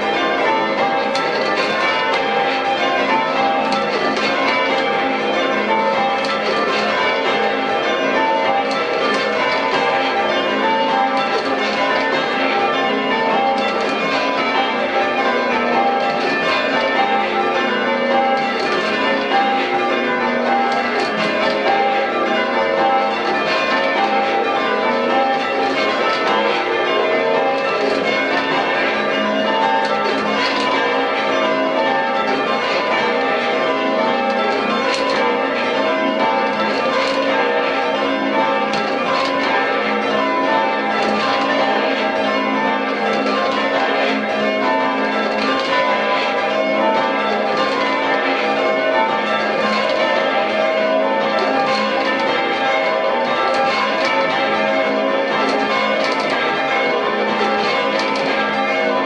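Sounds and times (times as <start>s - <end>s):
church bells ringing in rounds: 0.0s - 59.0s.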